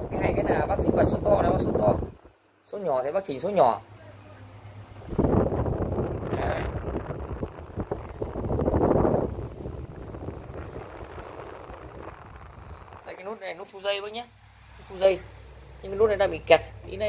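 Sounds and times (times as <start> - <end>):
fan wind buffeting microphone: 0.0 - 17.0.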